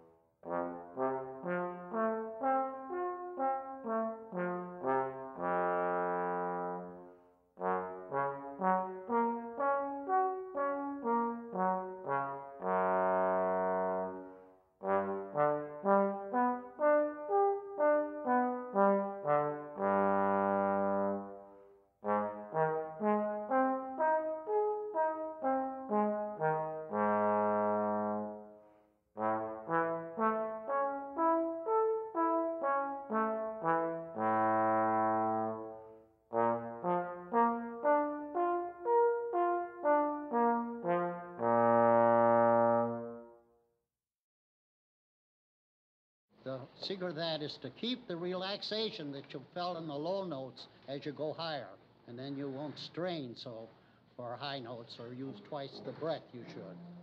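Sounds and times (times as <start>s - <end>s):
solo trombone playing: 0.0s - 28.6s, 29.2s - 43.4s.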